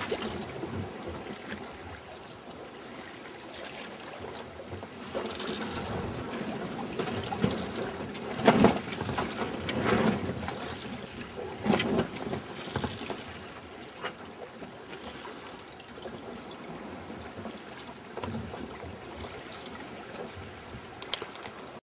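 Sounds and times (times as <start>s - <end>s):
water sloshing against hull: 0.0s - 21.8s.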